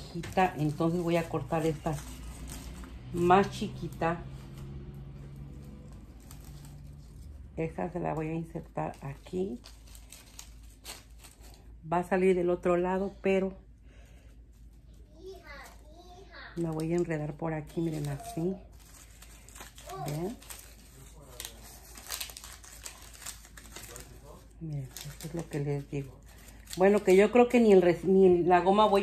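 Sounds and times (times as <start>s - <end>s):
plastic leaves rustling and crackling: 0.0s - 11.8s, 14.0s - 29.0s.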